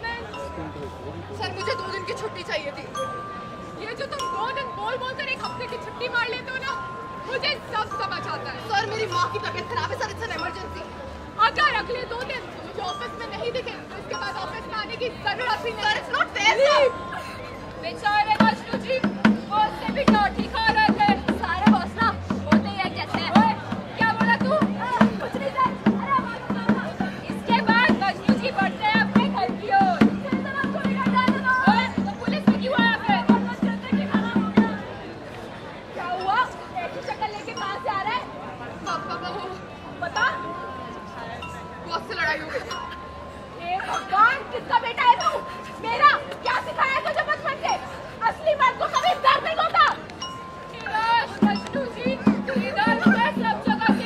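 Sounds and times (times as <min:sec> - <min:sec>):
hand drum steady beat: 0:18.3 - 0:34.9, 0:51.3 - 0:54.0
young women calling out: 0:50.8 - 0:54.0.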